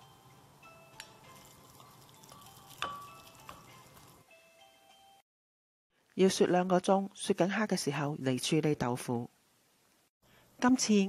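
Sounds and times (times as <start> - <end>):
quiet background music: 0.0 - 5.2
spoon clinking glass: 1.0 - 4.2.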